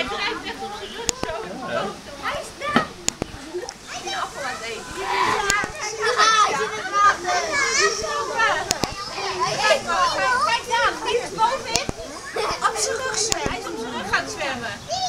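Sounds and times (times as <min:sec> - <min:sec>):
children chattering and calling: 0:00.0 - 0:15.0
sharp clicks: 0:03.0 - 0:03.8, 0:08.6 - 0:09.0, 0:11.7 - 0:12.0, 0:13.2 - 0:13.6.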